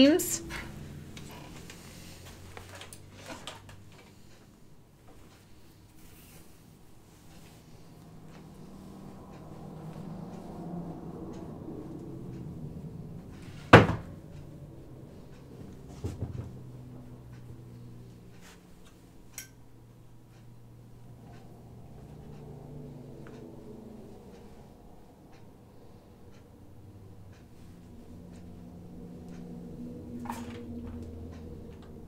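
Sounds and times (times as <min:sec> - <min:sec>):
low steady hum: 0:00.0 - 0:32.0.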